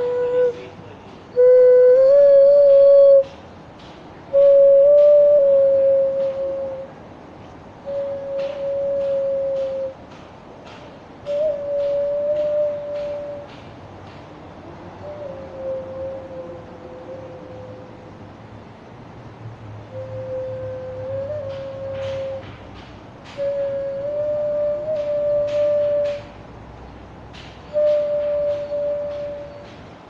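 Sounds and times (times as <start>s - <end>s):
clay vessel flute melody: 0.0s - 3.4s, 4.3s - 7.0s, 7.8s - 10.0s, 11.2s - 13.7s, 14.9s - 18.1s, 19.8s - 22.6s, 23.3s - 26.4s, 27.7s - 29.8s.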